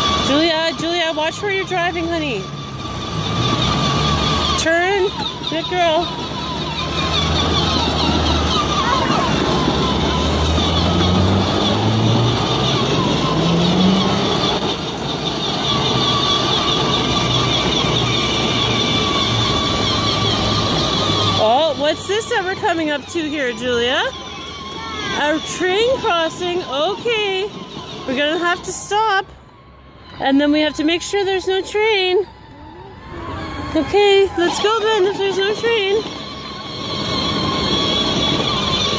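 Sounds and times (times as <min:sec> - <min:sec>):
plastic wheels rumbling on asphalt: 0:00.0 - 0:29.3, 0:33.3 - 0:38.9
toy quad electric motor whine: 0:00.0 - 0:38.9.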